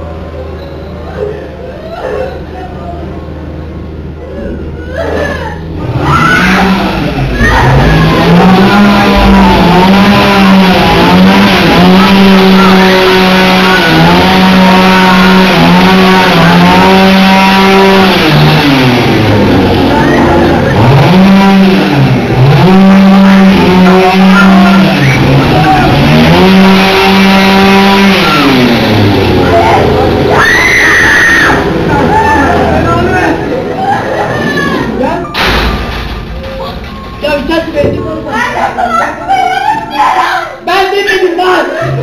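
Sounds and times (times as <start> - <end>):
engine revving: 5.6 - 36.8.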